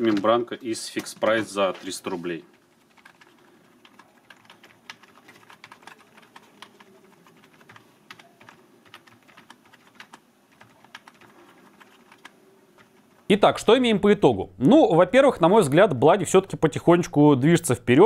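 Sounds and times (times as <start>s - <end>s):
membrane keyboard typing: 0.0s - 13.3s.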